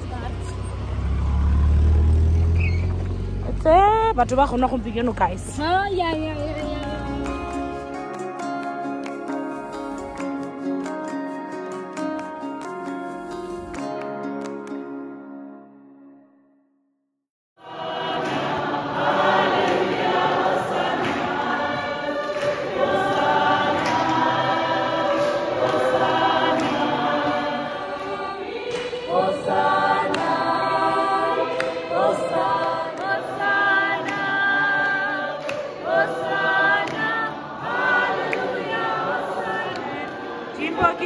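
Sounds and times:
congregation singing a hymn: 0:17.6 - 0:41.0.

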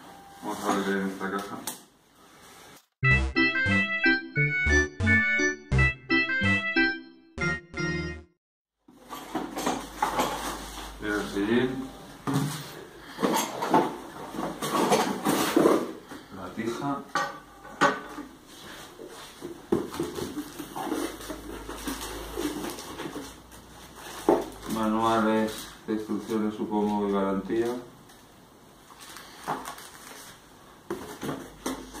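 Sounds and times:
parts knocking and clattering on table: 0:08.9 - 0:10.7, 0:13.2 - 0:16.0, 0:17.1 - 0:18.3
cardboard flaps rustling and scraping: 0:13.7 - 0:16.0, 0:18.5 - 0:27.8, 0:29.0 - 0:32.0.

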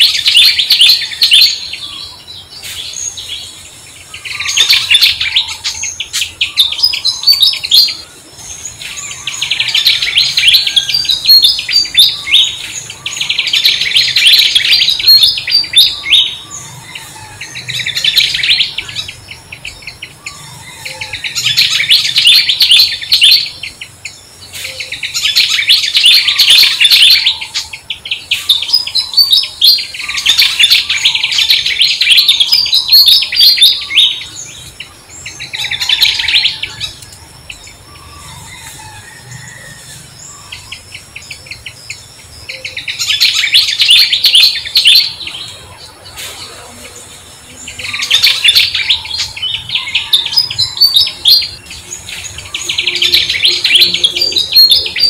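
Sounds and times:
birds twittering: 0:00.0 - 0:55.0.

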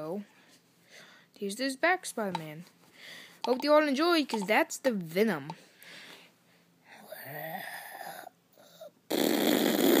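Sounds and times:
toy handling noise: 0:03.4 - 0:04.6.

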